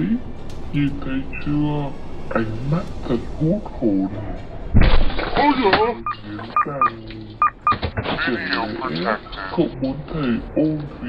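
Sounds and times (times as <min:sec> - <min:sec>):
person speaking: 0:05.4 - 0:07.5.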